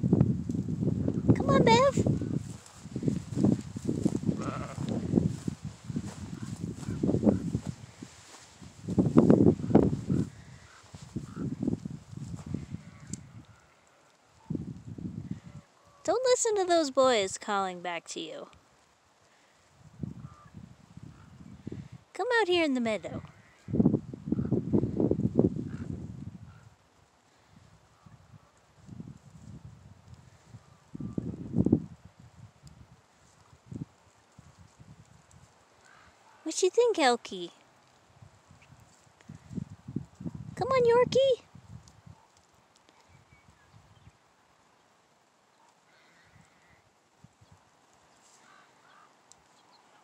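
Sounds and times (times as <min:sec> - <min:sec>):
footsteps on dry ground: 0:02.0 - 0:12.7
sheep bleating: 0:04.3 - 0:05.0.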